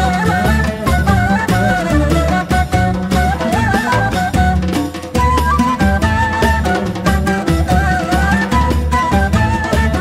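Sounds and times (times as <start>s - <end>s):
contrabass: 0.0s - 10.0s
hand percussion dance beat: 0.0s - 10.0s
ney flute melody: 0.0s - 10.0s
oud: 0.0s - 10.0s.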